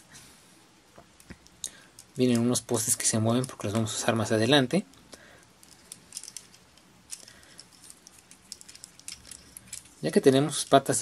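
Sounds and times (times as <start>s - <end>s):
plastic toy clicks and rattling: 5.6s - 11.0s.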